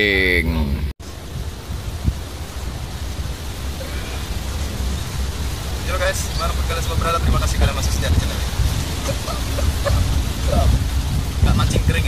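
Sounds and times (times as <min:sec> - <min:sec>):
wind rumbling on microphone: 0:00.5 - 0:12.0.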